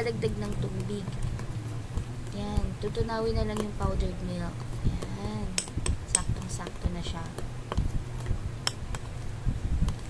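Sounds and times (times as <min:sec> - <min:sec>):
spoon stirring paste in bowl: 0:00.2 - 0:09.2.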